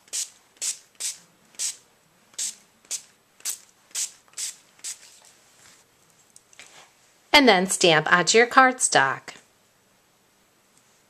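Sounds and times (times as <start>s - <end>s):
spray bottle hisses: 0.0s - 1.8s, 2.4s - 5.2s.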